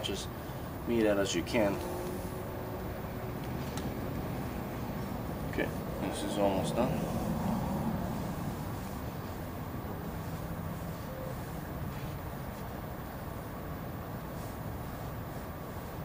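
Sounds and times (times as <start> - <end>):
low background rumble: 0.3 - 16.0.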